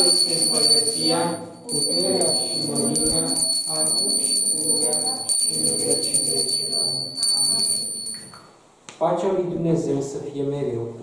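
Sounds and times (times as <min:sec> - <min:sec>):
altar bells jingling: 0:00.0 - 0:08.4.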